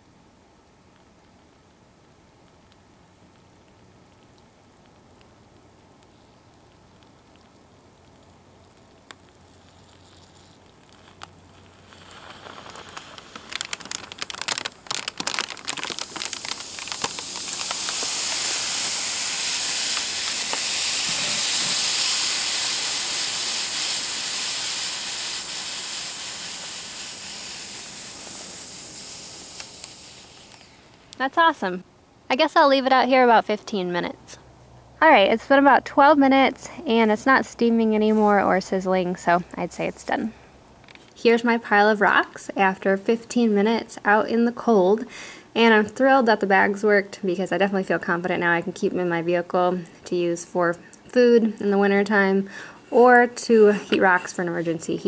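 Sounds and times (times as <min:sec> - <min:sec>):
heater bag crackling: 0:00.7 - 0:31.8
steam hissing from bag: 0:08.3 - 0:31.1.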